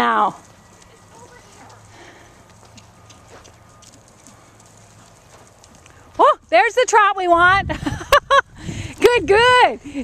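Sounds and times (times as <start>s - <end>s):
horse trotting on sand: 0.0s - 7.2s.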